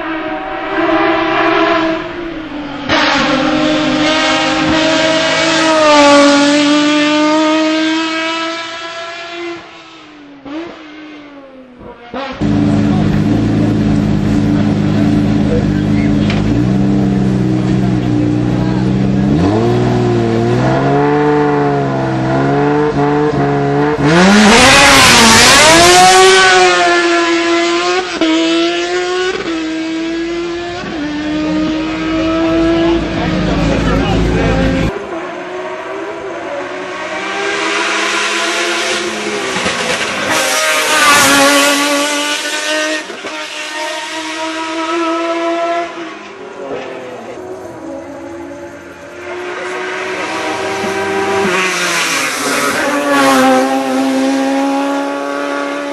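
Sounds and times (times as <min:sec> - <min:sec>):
racing car engine revving: 0:00.0 - 0:55.9
car engine idling: 0:12.4 - 0:19.3.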